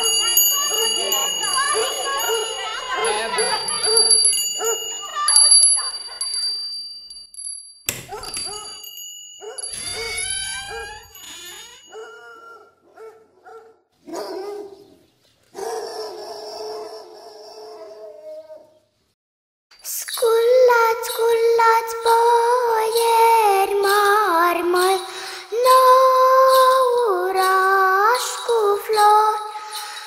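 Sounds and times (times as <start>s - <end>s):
children calling and chattering: 0.0s - 6.5s, 9.7s - 12.4s
small bells ringing: 0.0s - 12.5s, 24.8s - 30.0s.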